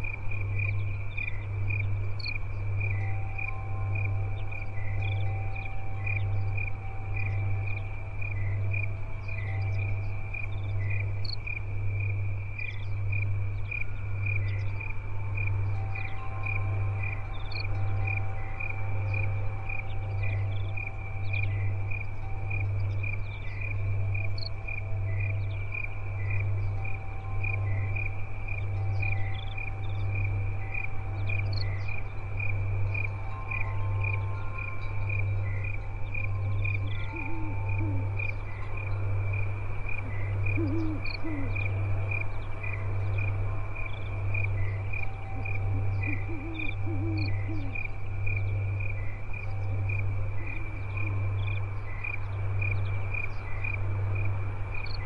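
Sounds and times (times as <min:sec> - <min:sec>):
crickets chirping: 0:00.0 - 0:55.0
short insect calls: 0:00.0 - 0:55.0.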